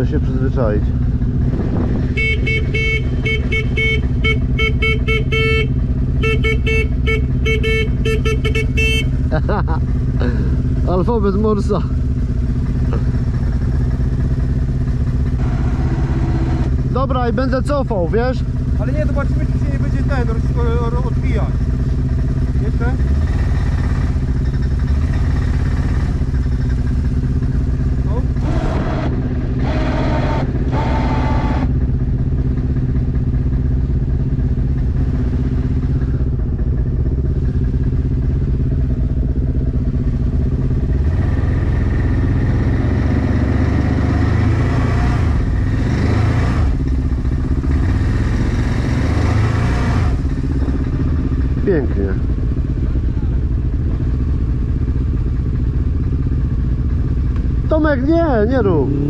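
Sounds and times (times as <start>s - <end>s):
atv engine running: 0.0s - 59.0s.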